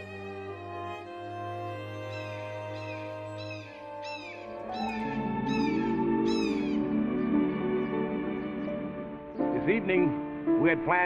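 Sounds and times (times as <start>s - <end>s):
soft music: 0.0s - 11.0s
chipmunk chirping: 2.0s - 6.9s.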